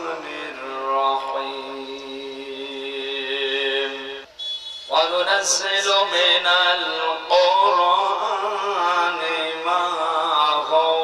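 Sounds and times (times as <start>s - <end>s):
man chanting into microphone: 0.0s - 4.2s, 4.9s - 11.0s.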